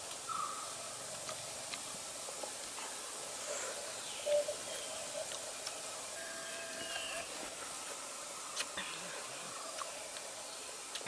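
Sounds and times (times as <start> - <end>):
steady hiss: 0.0 - 11.0
bird calls: 0.2 - 0.9, 3.4 - 7.5.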